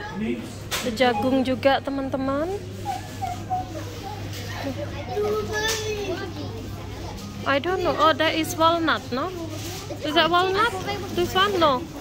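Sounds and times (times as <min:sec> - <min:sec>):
children's voices: 0:02.8 - 0:08.5, 0:09.3 - 0:12.0.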